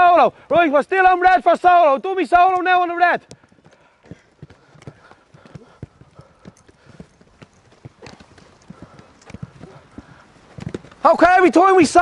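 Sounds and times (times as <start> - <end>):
running footsteps on artificial turf: 0.0 - 12.0
footballs bouncing: 2.5 - 11.0.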